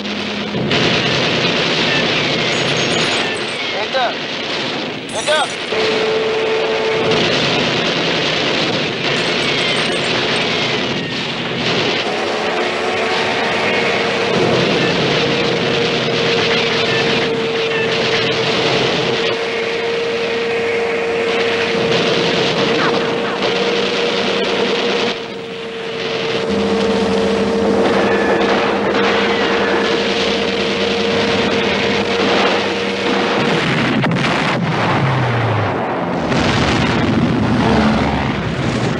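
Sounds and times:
droning tone: 0.0s - 38.9s
lower drone: 0.0s - 38.9s
heavy gunfire: 7.0s - 20.2s.

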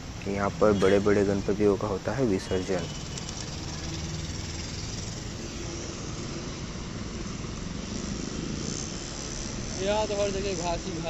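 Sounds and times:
low outdoor rumble with hiss: 0.0s - 11.0s.

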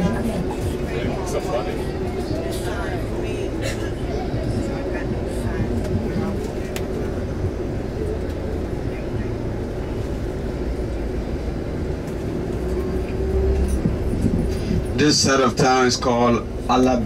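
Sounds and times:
vehicle engine and road rumble: 0.0s - 17.0s.

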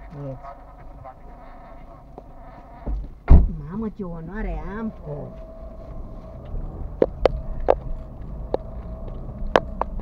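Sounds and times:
buzzing hum in car cabin: 0.0s - 10.0s.

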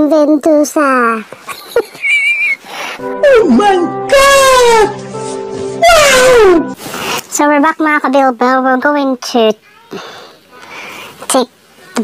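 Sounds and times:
background music chord: 3.0s - 6.8s
man wailing cry: 3.2s - 5.0s, 5.8s - 6.8s.

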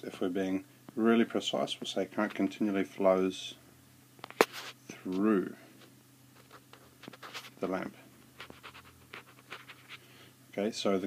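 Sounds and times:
low electrical hum: 0.0s - 11.0s
stylus scratching on tablet screen: 6.4s - 7.6s, 8.4s - 10.0s.

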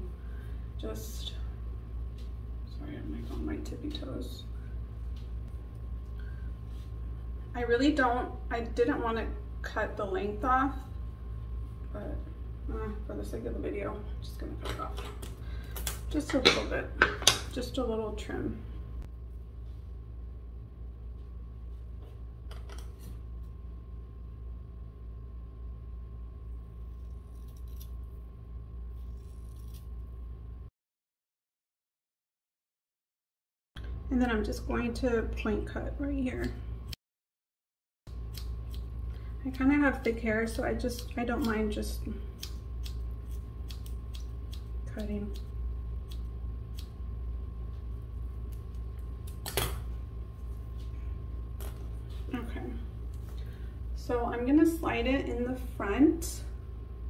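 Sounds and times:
steady low hum: 0.0s - 30.7s, 33.8s - 37.0s, 38.1s - 57.0s
scissors snipping hair: 26.9s - 28.0s, 29.0s - 29.9s, 38.1s - 38.9s, 40.0s - 41.8s, 42.4s - 47.0s.

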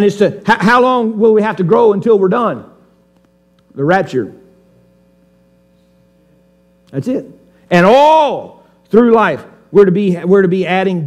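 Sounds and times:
man speaking: 0.0s - 2.7s, 3.7s - 4.5s, 6.9s - 11.0s
faint electrical hum: 0.0s - 11.0s.

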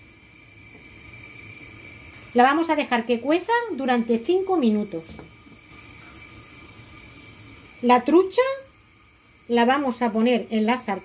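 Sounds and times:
water boiling under lid: 0.0s - 11.0s.

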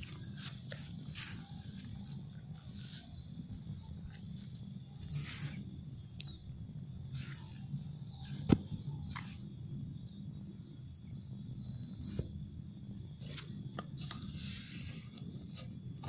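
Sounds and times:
high insect drone: 0.0s - 16.0s.

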